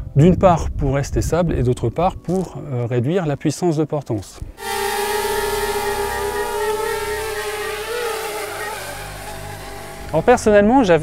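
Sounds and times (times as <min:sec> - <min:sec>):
drone propellers whining: 0:04.6 - 0:10.6.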